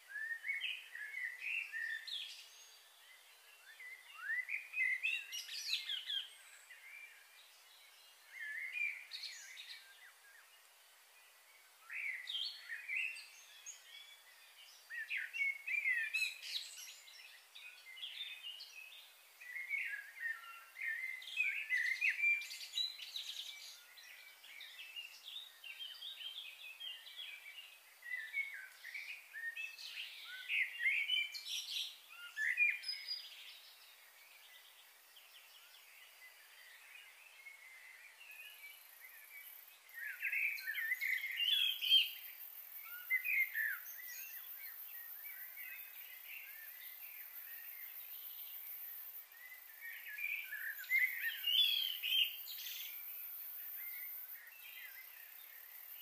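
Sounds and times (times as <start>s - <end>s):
birds chirping: 11.8s - 56.0s.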